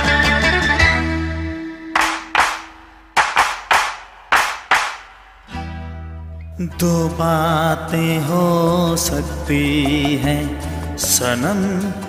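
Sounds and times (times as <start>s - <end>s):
sharp handclaps: 2.0s - 5.4s.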